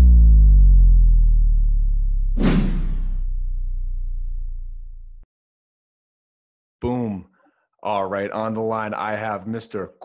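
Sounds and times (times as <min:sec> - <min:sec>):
low bass note: 0:00.0 - 0:05.2
whoosh sound effect: 0:02.4 - 0:03.2.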